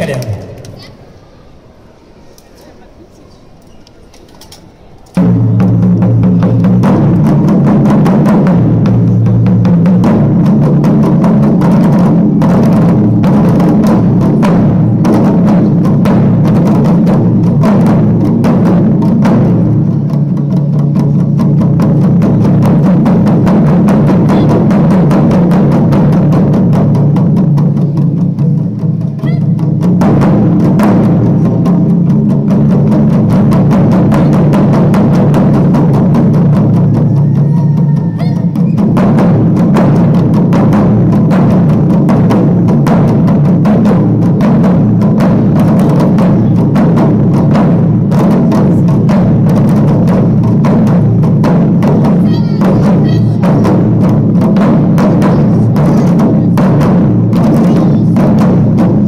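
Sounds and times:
drums beaten with sticks: 0:00.0 - 0:00.9, 0:05.1 - 0:59.0.

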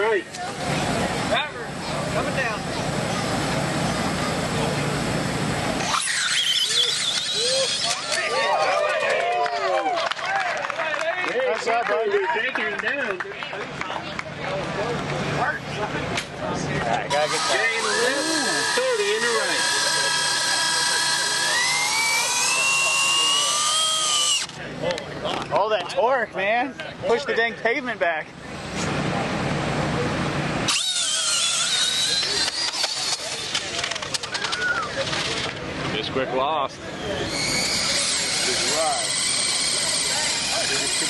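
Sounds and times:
electric motor high whine: 0:04.5 - 0:08.6, 0:17.1 - 0:24.6, 0:30.6 - 0:34.6, 0:37.0 - 0:41.0
spectators shouting and cheering: 0:05.8 - 0:14.4.

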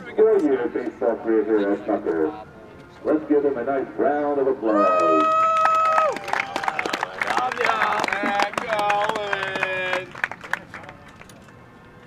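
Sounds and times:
long held cheering call: 0:04.7 - 0:10.1
crowd applauding and cheering: 0:04.8 - 0:11.0.

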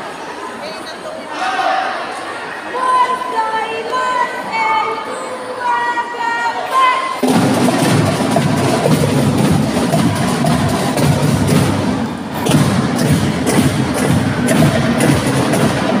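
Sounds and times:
marching drum cadence: 0:07.2 - 0:16.0.

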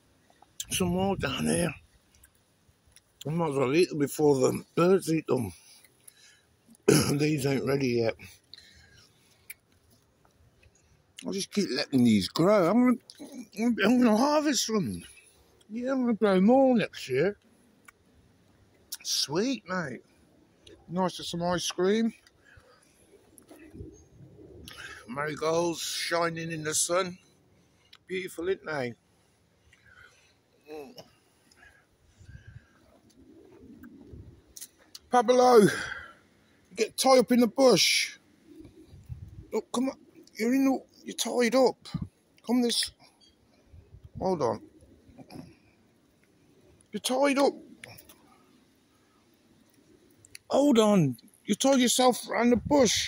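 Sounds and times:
man's voice: 0:00.6 - 0:01.8, 0:06.9 - 0:08.1, 0:50.5 - 0:53.0
pigeon cooing: 0:31.6 - 0:34.5.

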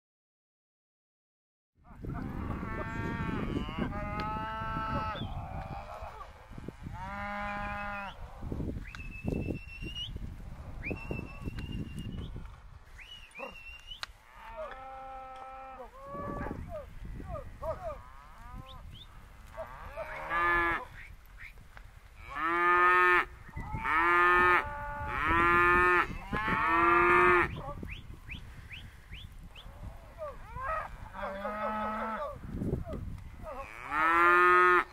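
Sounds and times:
cattle mooing: 0:02.4 - 0:08.5, 0:19.5 - 0:20.9, 0:30.2 - 0:32.4.

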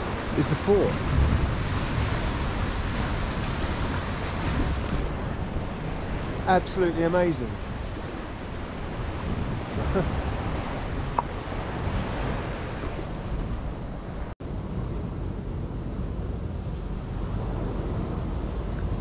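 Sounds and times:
sea waves washing against rocks: 0:00.0 - 0:14.4
wind buffeting microphone: 0:00.0 - 0:19.0
short laugh: 0:09.8 - 0:10.2.

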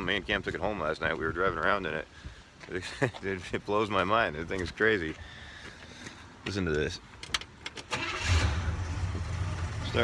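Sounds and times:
starter cranking engine: 0:07.8 - 0:09.8
car engine idling: 0:08.0 - 0:10.0.

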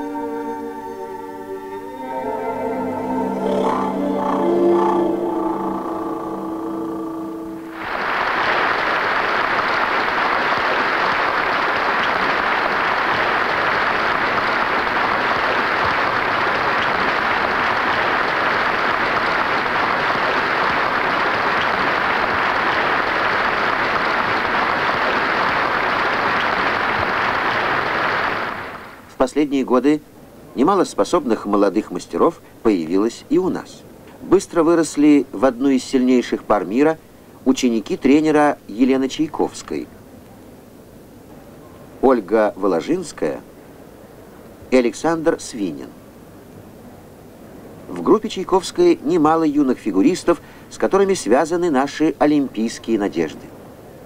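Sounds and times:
instrumental music: 0:00.0 - 0:09.0
audience applause: 0:07.6 - 0:29.1.

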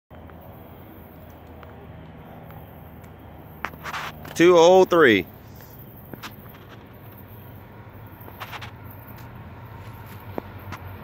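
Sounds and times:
rumble of diesel locomotives: 0:00.1 - 0:11.0.

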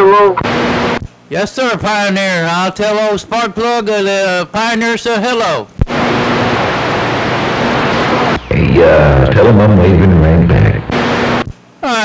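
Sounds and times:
radio static hiss: 0:00.0 - 0:01.4, 0:05.8 - 0:12.0.

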